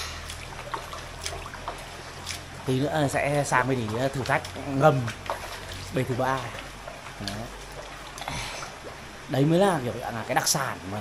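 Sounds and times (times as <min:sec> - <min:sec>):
small water splashes: 0:00.0 - 0:11.0
water lapping and trickling: 0:00.0 - 0:11.0.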